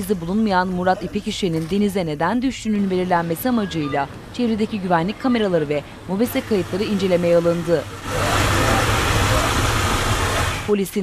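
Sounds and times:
vehicle engine running: 0:00.0 - 0:03.4, 0:04.5 - 0:10.8.

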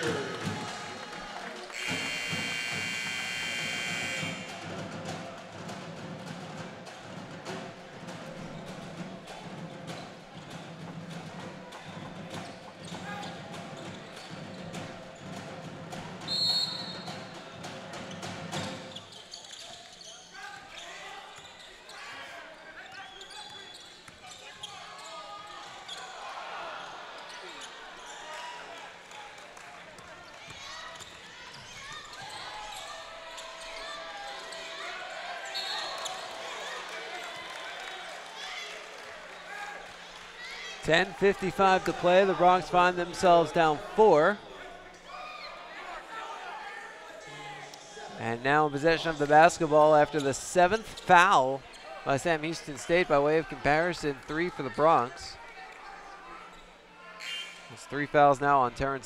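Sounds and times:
crowd chatter: 0:00.0 - 0:59.0
sneaker squeaks on hardwood: 0:01.8 - 0:04.4
referee's whistle: 0:01.8 - 0:04.6, 0:16.3 - 0:17.2, 0:35.4 - 0:36.2, 0:57.2 - 0:57.6
short loud horn tone: 0:01.8 - 0:04.6.

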